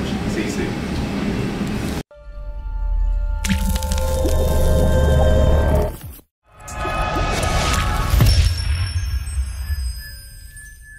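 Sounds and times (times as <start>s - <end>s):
wet splat: 3.4s - 4.4s.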